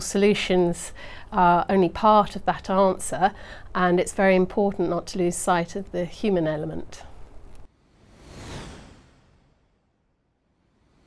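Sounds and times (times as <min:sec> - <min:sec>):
whoosh: 0:07.7 - 0:11.0.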